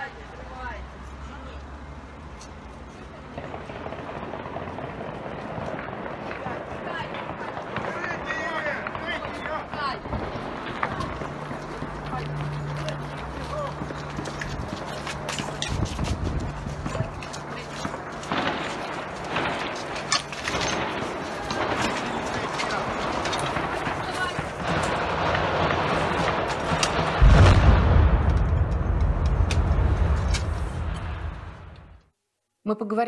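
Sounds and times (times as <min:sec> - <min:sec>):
running footsteps: 0:01.0 - 0:27.3
low rumble and clatter: 0:02.6 - 0:32.0
sharp cracks: 0:03.2 - 0:32.1.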